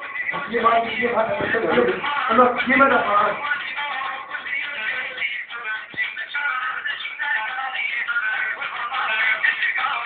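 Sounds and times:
man singing: 0:00.0 - 0:10.0
thin tinny dance music: 0:00.0 - 0:10.0.

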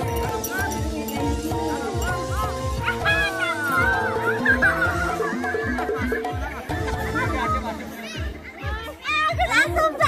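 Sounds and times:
background music with a beat: 0:00.0 - 0:10.0.

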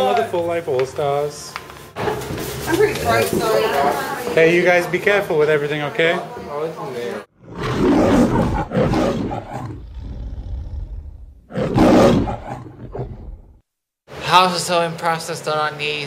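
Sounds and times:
loud roar: 0:07.4 - 0:13.2.

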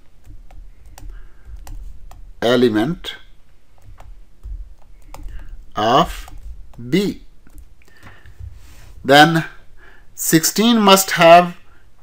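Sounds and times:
stylus tapping on screen: 0:00.0 - 0:09.0
low steady hum: 0:00.0 - 0:12.0.

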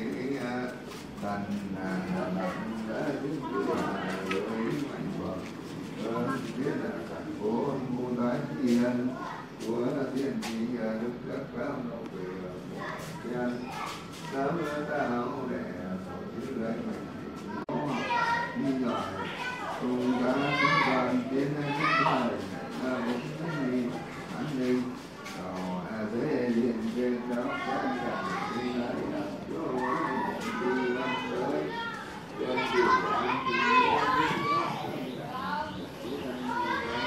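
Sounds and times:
children chattering and calling: 0:00.0 - 0:37.0.

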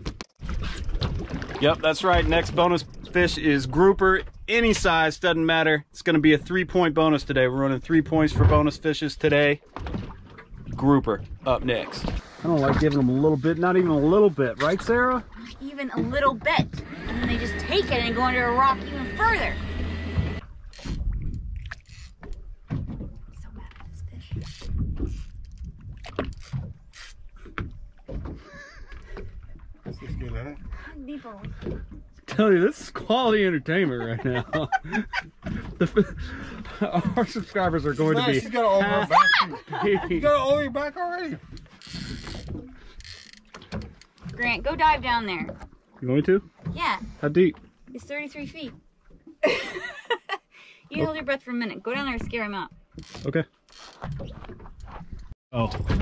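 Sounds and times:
water slapping boat hull: 0:00.0 - 0:56.0.

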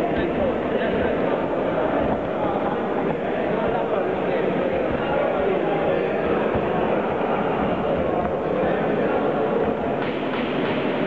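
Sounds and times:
crowd voices babbling: 0:00.0 - 0:11.0.

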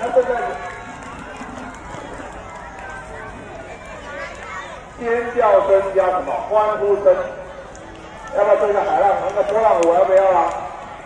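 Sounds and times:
children chattering and calling out: 0:00.8 - 0:08.8.

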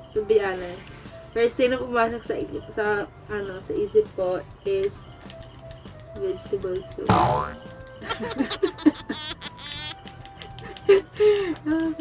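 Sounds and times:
background music: 0:00.0 - 0:12.0
cartoon boing sound effect: 0:07.1 - 0:07.7.

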